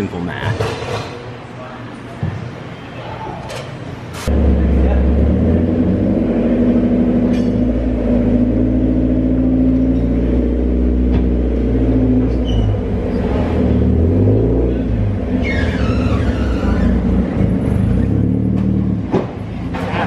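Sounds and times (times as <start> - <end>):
car engine idling: 4.3 - 20.0.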